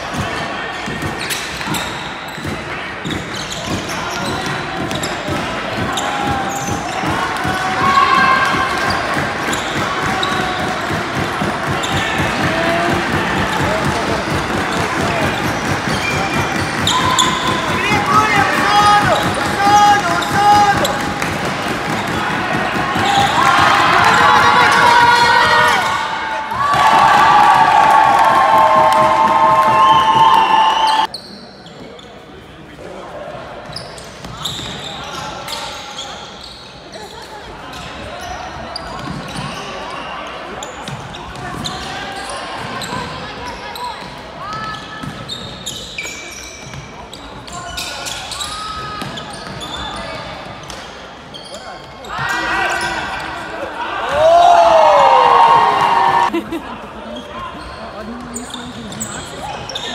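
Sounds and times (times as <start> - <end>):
players calling and shouting: 0.0 - 31.6, 51.3 - 59.9
shoe squeaks on wooden floor: 1.1 - 5.3, 31.0 - 32.2, 33.6 - 50.3, 57.2 - 59.9.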